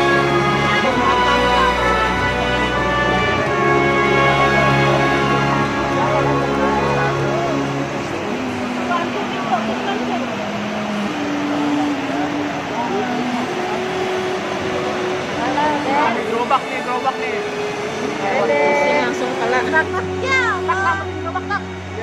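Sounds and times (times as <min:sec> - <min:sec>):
flood water rushing: 0:00.0 - 0:22.0.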